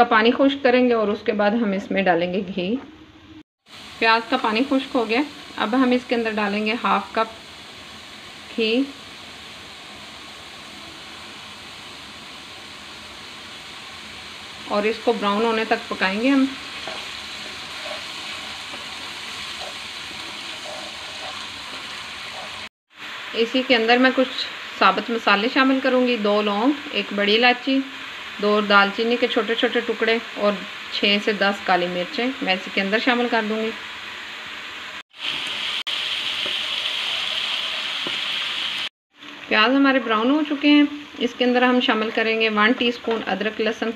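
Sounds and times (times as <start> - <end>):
onion paste sizzling in oil: 3.6 - 43.9.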